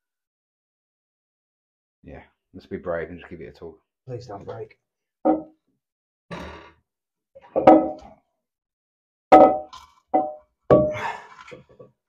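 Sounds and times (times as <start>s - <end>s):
ceramic cistern knocking: 5.3s - 5.5s, 7.6s - 8.1s, 9.4s - 11.0s.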